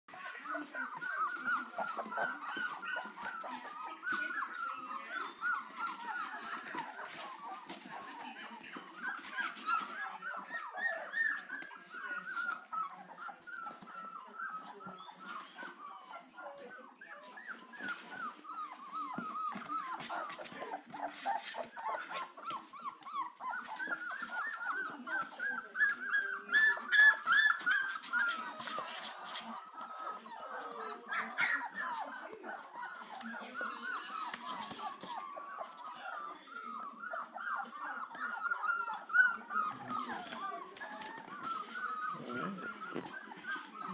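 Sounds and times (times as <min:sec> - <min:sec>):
puppies squealing and whining: 0:00.1 - 0:43.9.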